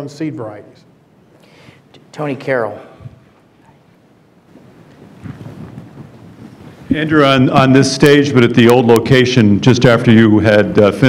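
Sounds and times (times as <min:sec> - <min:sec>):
man speaking into a microphone: 0:02.1 - 0:03.2, 0:06.9 - 0:11.0
microphone handling rustle: 0:04.5 - 0:07.7.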